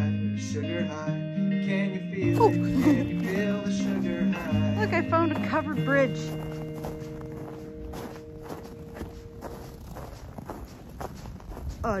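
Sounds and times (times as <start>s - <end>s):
background music chord: 0.0s - 9.7s
footsteps crunching on snow: 2.2s - 12.0s.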